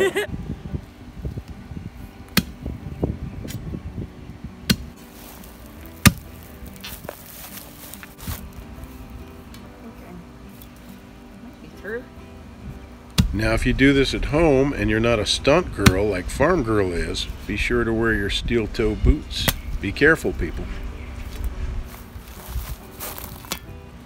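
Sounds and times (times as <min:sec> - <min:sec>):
dull thuds: 0:13.2 - 0:16.6.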